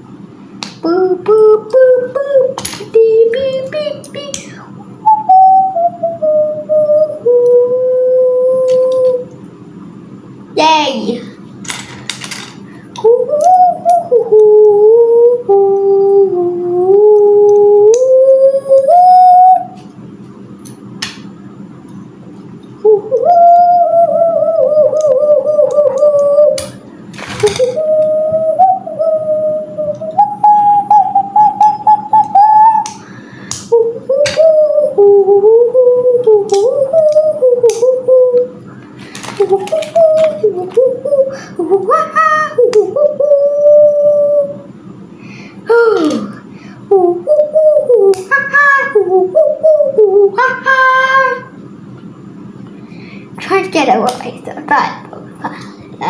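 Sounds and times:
low background hum: 0:00.0 - 0:56.0
child humming: 0:00.8 - 0:09.3, 0:13.0 - 0:19.8, 0:22.8 - 0:44.8, 0:45.6 - 0:51.5.

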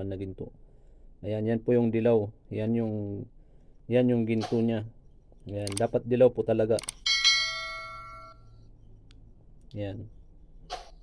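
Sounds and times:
bright bell chime: 0:07.1 - 0:08.6.

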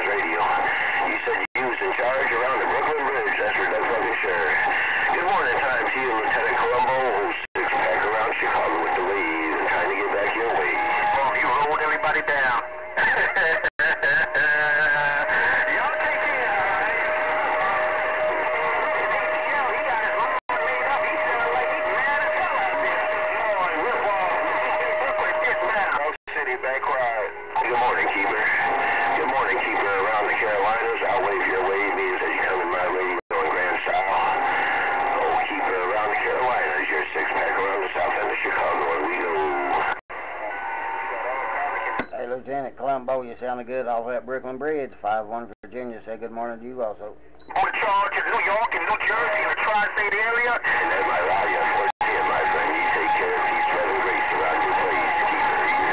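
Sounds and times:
steady radio whistle: 0:00.0 - 0:42.4, 0:47.2 - 0:55.9
garbled radio voices: 0:00.0 - 0:55.9.

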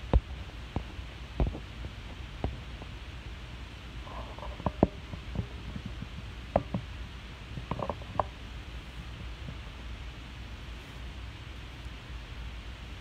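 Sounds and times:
low room rumble: 0:00.0 - 0:13.0
small sharp clicks and knocks: 0:04.2 - 0:06.9, 0:07.6 - 0:08.4.

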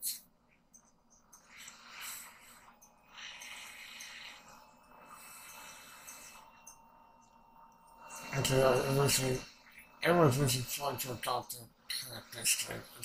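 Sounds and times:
person breathing: 0:01.3 - 0:06.8.

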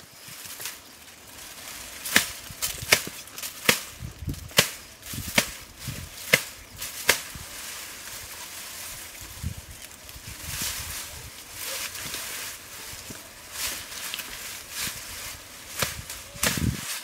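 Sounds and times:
hand tool chopping ground: 0:02.0 - 0:07.4, 0:11.7 - 0:17.0.

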